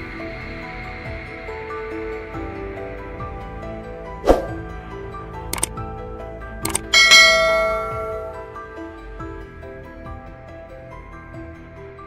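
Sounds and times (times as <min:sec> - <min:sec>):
background music: 0:00.0 - 0:12.0
quick double clicks: 0:06.6 - 0:06.9
bright bell chime: 0:06.8 - 0:08.5.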